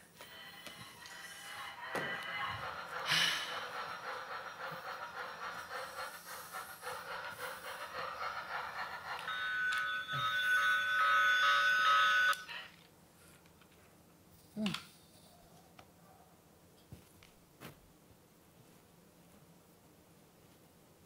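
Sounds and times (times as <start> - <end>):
toy train chugging: 0.2 - 12.7.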